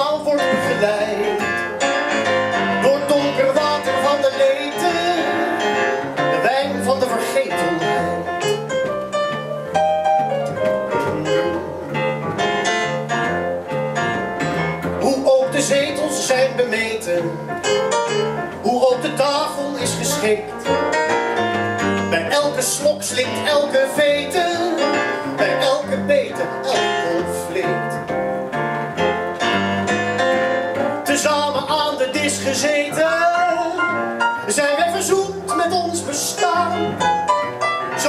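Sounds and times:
piano notes and chords: 0:00.0 - 0:38.0
plucked double bass: 0:00.0 - 0:38.0.

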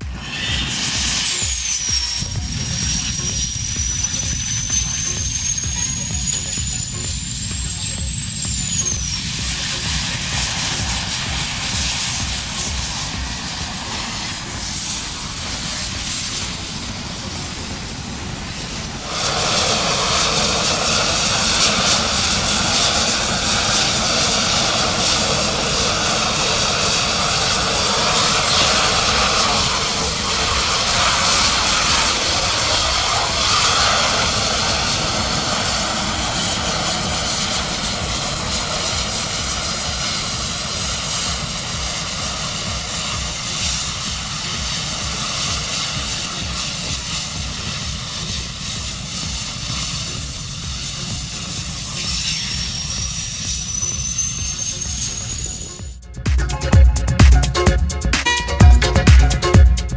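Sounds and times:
jet fire roaring: 0:00.0 - 0:59.9.

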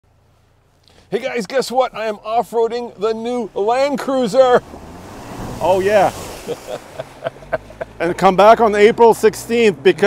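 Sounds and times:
low engine hum: 0:01.8 - 0:09.9
vehicle splashing through water: 0:02.5 - 0:10.0.

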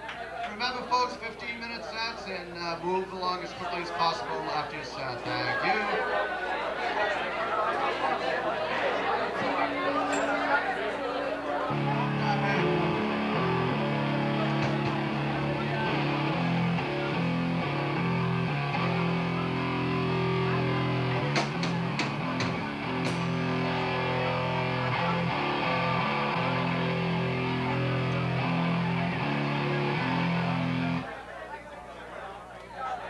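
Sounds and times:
rock band playing live: 0:11.7 - 0:31.0
distorted electric guitar chords: 0:11.7 - 0:31.1.

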